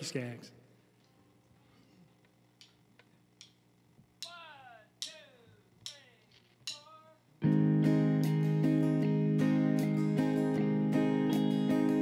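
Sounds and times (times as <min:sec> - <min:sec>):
drums: 0:04.1 - 0:12.0
country band playing: 0:07.4 - 0:12.0
electric bass: 0:07.4 - 0:12.0
strummed acoustic guitar: 0:07.5 - 0:12.0.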